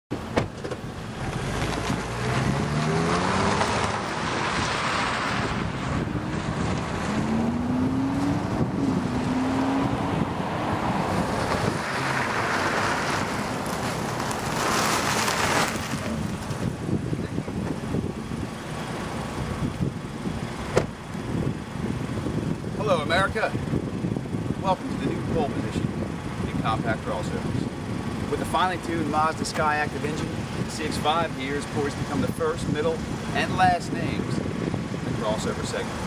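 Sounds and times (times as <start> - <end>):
road and wind noise: 0.1 - 36.0
car engine accelerating: 0.6 - 22.4.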